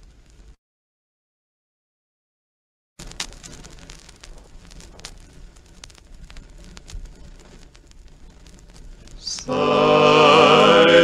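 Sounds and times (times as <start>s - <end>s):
vinyl clicks and pops: 3.0s - 9.5s
low turntable rumble: 3.0s - 10.6s.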